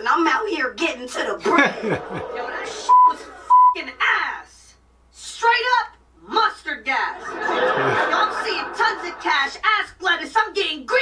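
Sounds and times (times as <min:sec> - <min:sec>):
man laughing: 0:01.4 - 0:02.3, 0:07.6 - 0:08.6
voices talking: 0:07.1 - 0:10.0.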